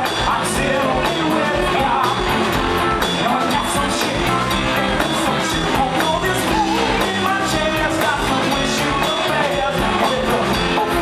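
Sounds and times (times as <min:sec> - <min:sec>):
bass guitar: 0:00.0 - 0:11.0
distorted electric guitars: 0:00.0 - 0:11.0
drum kit with cymbals: 0:00.0 - 0:11.0
person singing: 0:00.0 - 0:11.0.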